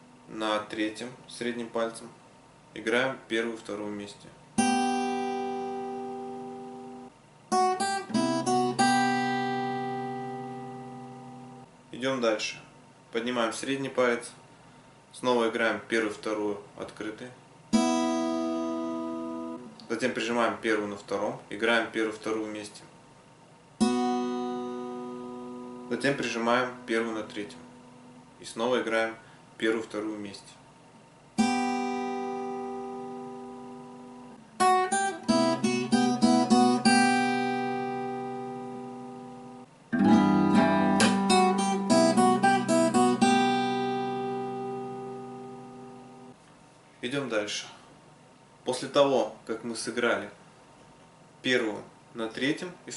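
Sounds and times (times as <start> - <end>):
acoustic guitar strings plucked: 4.6 - 11.6, 17.8 - 19.9, 23.8 - 28.1, 31.4 - 46.4.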